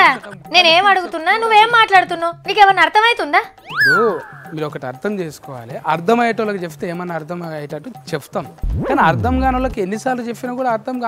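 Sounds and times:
sweeping whoosh with rumble: 0:08.6 - 0:09.8.

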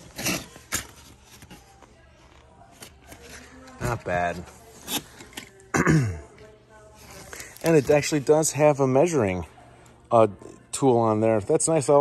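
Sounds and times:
store ambience: 0:00.0 - 0:12.0.

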